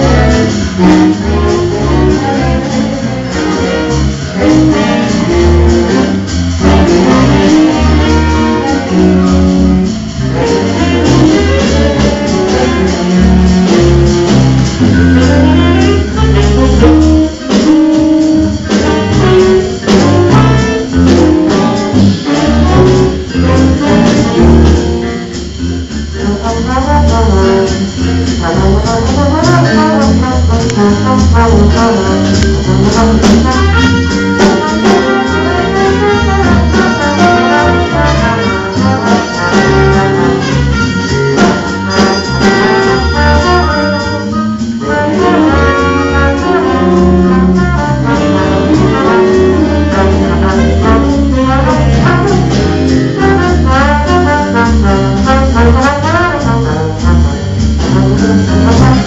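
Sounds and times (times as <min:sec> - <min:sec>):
saxophone: 0:00.0 - 0:30.8, 0:31.7 - 0:59.0
jazz big band playing: 0:00.0 - 0:59.0.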